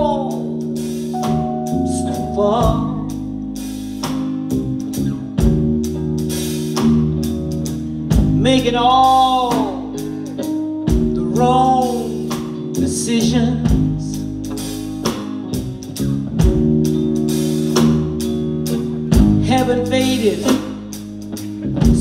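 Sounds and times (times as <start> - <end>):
live band playing slow song: 0.0 - 22.0
woman singing: 1.8 - 3.2, 8.4 - 10.0, 11.2 - 12.2, 12.8 - 14.2, 19.4 - 20.8.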